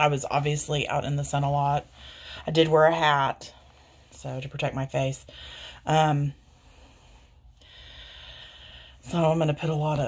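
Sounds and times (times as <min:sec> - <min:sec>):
person breathing in: 0:06.4 - 0:09.0.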